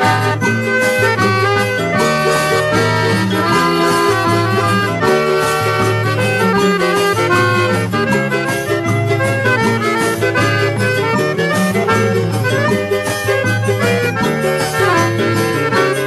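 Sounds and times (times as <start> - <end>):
accordion playing quick melody: 0.0 - 16.0
steady bass line: 0.0 - 16.0.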